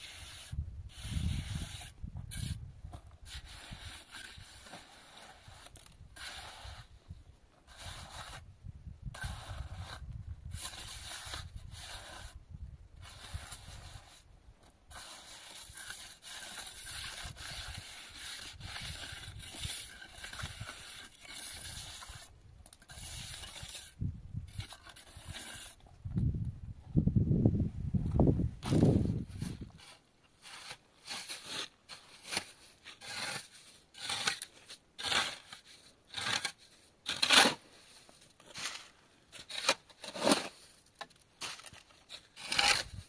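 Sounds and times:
trowel scraping plaster: 0.0s - 7.0s, 7.6s - 8.5s, 9.1s - 12.4s, 13.0s - 14.3s, 14.9s - 25.8s, 28.6s - 43.0s.

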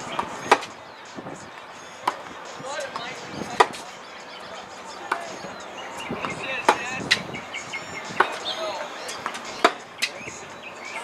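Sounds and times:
tennis ball pops off racquet: 0.2s - 0.7s, 3.6s - 3.8s, 9.2s - 10.2s.

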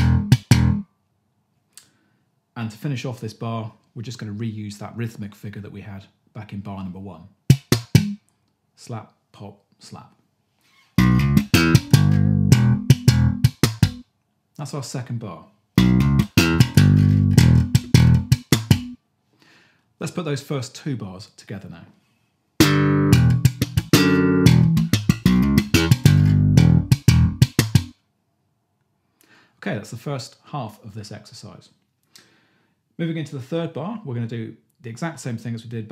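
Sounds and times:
slap bass funk line: 0.0s - 0.8s, 7.5s - 8.2s, 11.0s - 14.0s, 15.8s - 19.0s, 22.6s - 27.9s.

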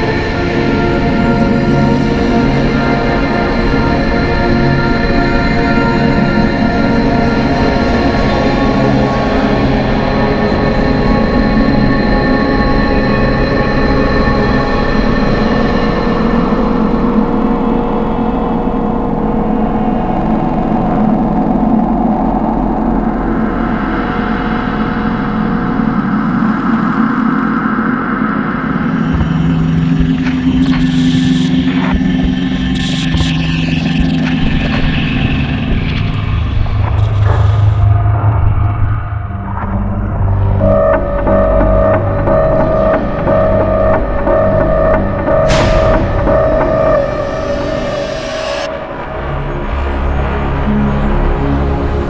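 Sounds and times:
dense drone of sustained tones: 0.0s - 52.0s
low rumble: 25.1s - 50.7s.

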